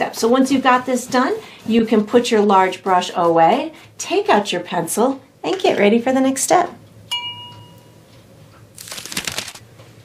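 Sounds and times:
crackling rustle of clicks: 0:08.2 - 0:09.9.

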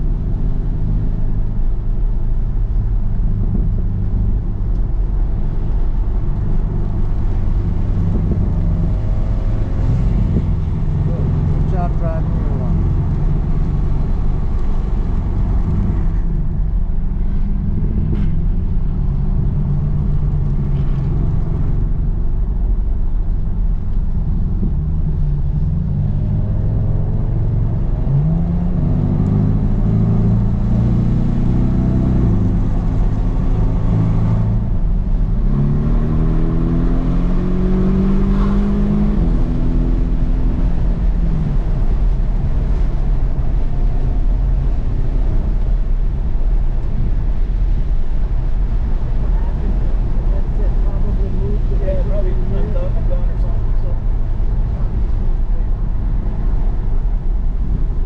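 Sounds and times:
car engine accelerating: 0:00.0 - 0:58.0
tyre and road noise: 0:00.0 - 0:58.0.

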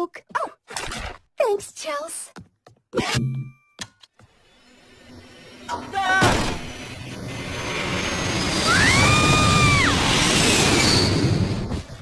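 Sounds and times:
jet flying past: 0:07.2 - 0:11.9.

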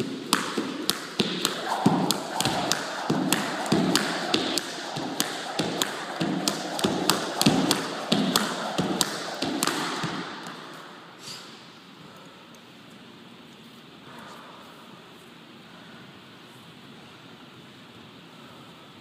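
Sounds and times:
skipping rope slapping floor: 0:00.0 - 0:10.9.

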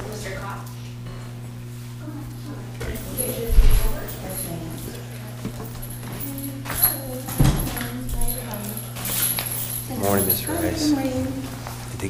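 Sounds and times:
steady low hum: 0:00.0 - 0:12.0
faint voices: 0:02.0 - 0:12.0.

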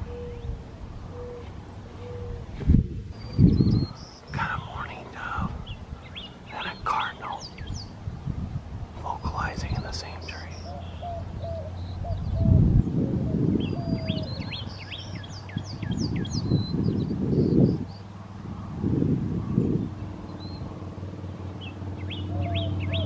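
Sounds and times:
dove cooing: 0:00.0 - 0:02.5, 0:10.6 - 0:15.3, 0:22.1 - 0:23.0.

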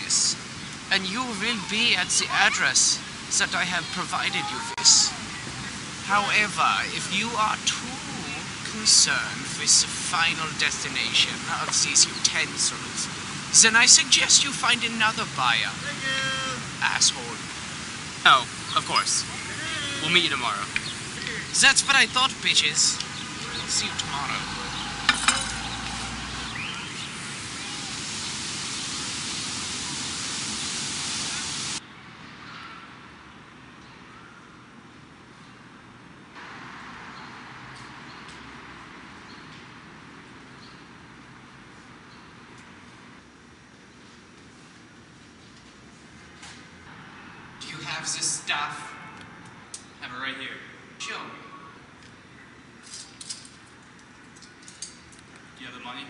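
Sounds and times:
city plaza hiss: 0:00.0 - 0:31.8.

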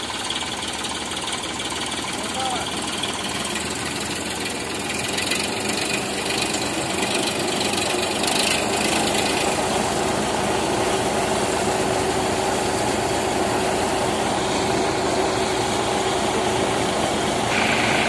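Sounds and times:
thresher drum and blower: 0:00.0 - 0:18.0
tractor engine running: 0:00.0 - 0:18.0.

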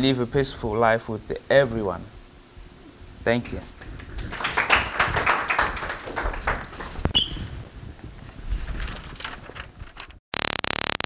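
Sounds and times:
audience applauding: 0:03.8 - 0:07.0.

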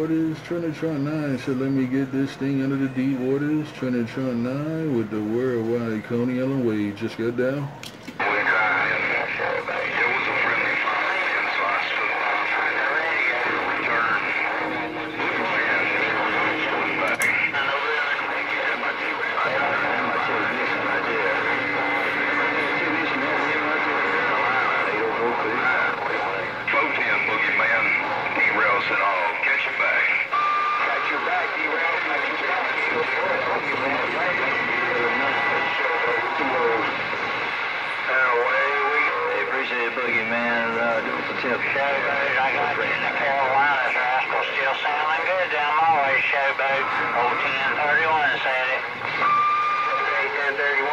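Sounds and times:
radio whistles and wavering tones: 0:00.0 - 0:03.7, 0:08.2 - 0:50.9
garbled radio voices: 0:00.0 - 0:50.9.

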